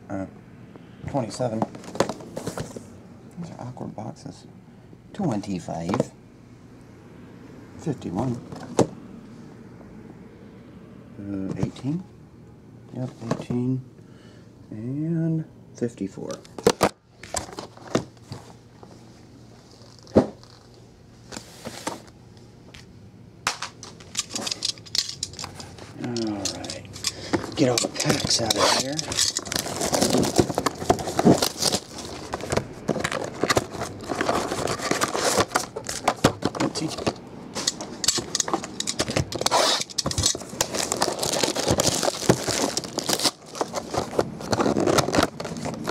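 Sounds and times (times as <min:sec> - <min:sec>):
cardboard rustling scrape: 0:01.6 - 0:02.9, 0:21.3 - 0:22.1, 0:25.4 - 0:45.9.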